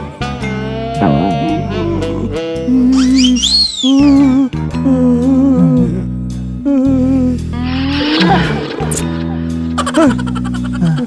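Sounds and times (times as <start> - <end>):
slow melody with wavering notes: 0.0 - 10.1
steady low drone: 4.8 - 11.0.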